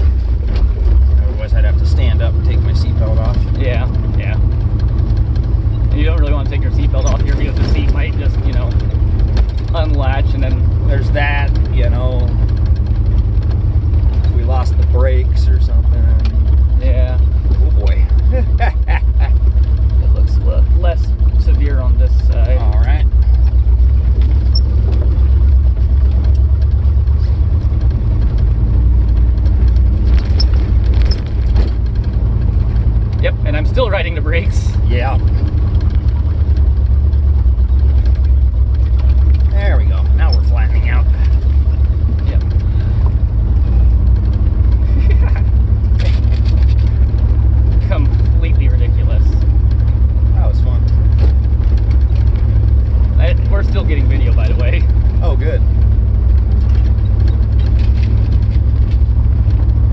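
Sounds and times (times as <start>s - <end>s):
car driving on dirt road: 0.0s - 59.9s
indistinct voices: 14.2s - 23.6s, 39.0s - 43.1s.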